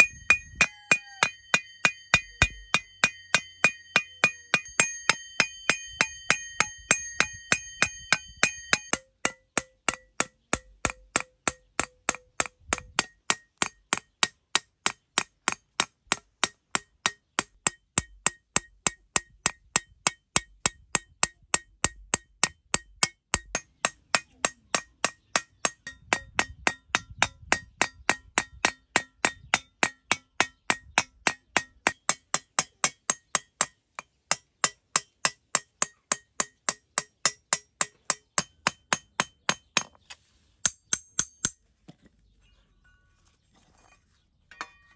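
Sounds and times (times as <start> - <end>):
hammer striking metal blade: 0.0 - 26.8.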